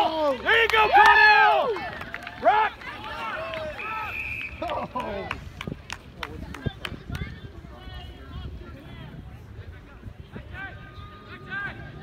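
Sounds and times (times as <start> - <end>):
referee whistle blast: 3.8 - 4.6.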